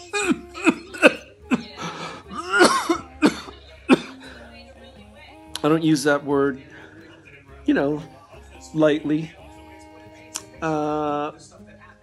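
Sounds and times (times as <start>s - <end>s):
man coughing: 0.0s - 1.7s, 2.3s - 4.3s.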